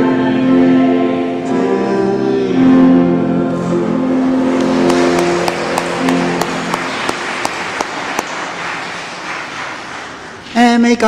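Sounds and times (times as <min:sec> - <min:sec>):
congregation singing: 0:00.0 - 0:10.5
musical accompaniment: 0:00.3 - 0:10.4
applause: 0:04.4 - 0:10.8.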